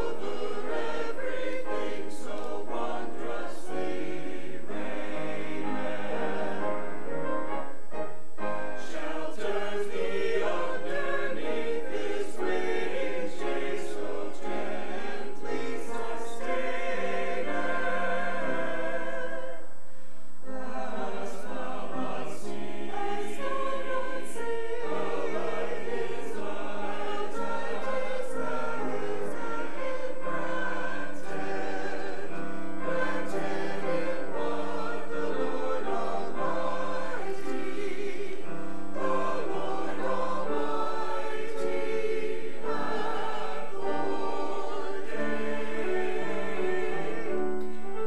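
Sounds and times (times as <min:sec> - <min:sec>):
church choir singing: 0:00.0 - 0:48.0.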